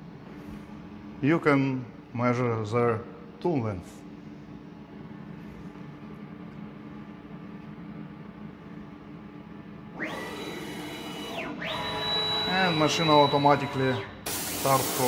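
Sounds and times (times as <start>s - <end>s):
drive motors whining: 10.0s - 15.0s
router humming at idle: 10.0s - 15.0s.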